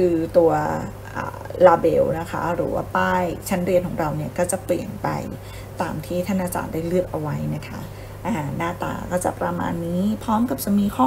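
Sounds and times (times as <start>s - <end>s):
woman narrating: 0.0s - 11.0s.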